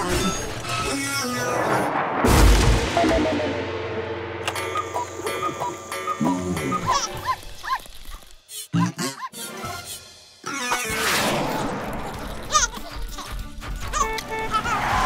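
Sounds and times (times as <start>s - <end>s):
comic crash thud: 1.6s - 5.3s
cartoon background music: 4.5s - 7.9s, 8.5s - 15.0s
small dog yipping: 7.2s - 8.0s.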